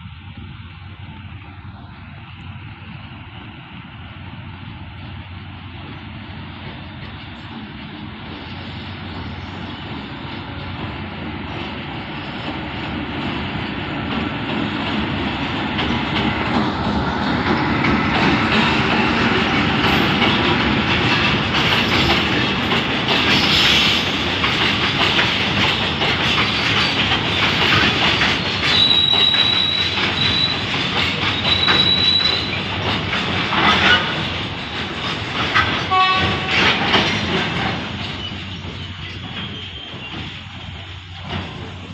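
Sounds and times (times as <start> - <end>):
freight train rolling past: 0.0 - 41.9
wheels clattering over rail joints: 7.4 - 41.9
high thin wheel squeal: 28.6 - 32.8, 38.0 - 40.8.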